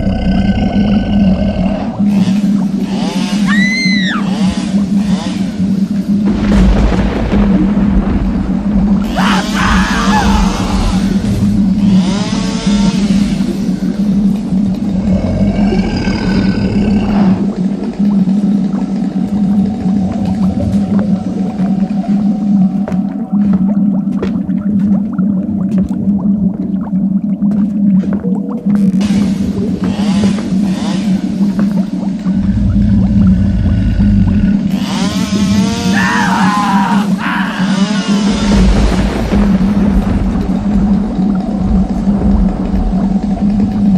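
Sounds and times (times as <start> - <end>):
low drone: 0.0 - 43.9
eerie wailing moaning cries: 9.0 - 11.3, 35.3 - 38.6
chainsaw engine revving: 34.7 - 36.0.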